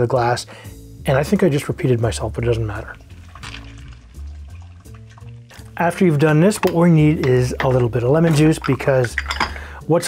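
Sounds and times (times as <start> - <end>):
soft background music: 0.0 - 10.0
juice trickling into a glass: 2.2 - 9.8.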